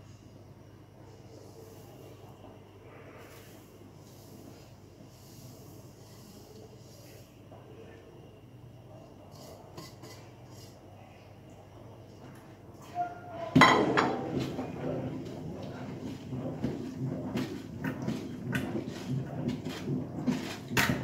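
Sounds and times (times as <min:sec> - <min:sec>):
spoon clanking on metal pot: 0:13.5 - 0:14.8.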